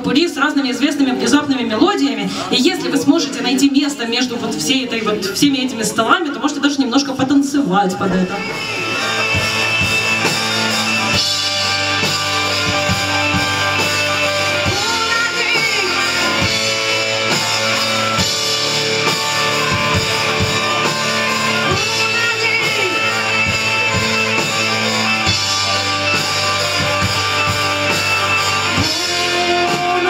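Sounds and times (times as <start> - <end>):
rock band playing: 7.2 - 30.0
bagpipe: 8.2 - 14.8.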